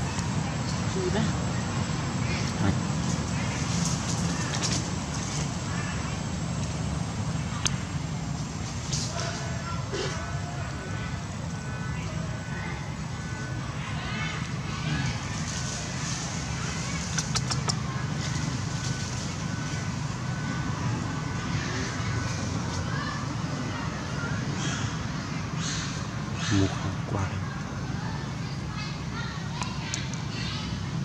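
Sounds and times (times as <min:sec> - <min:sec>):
low rumble and hiss: 0:00.0 - 0:31.0.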